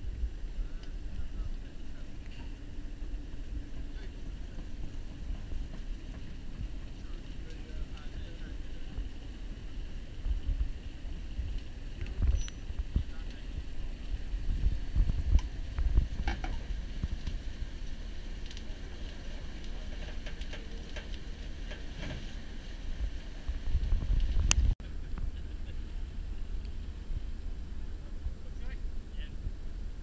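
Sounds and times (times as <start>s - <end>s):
wind rumbling on microphone: 0.0s - 30.0s
faint clicks and knocks: 18.4s - 22.4s.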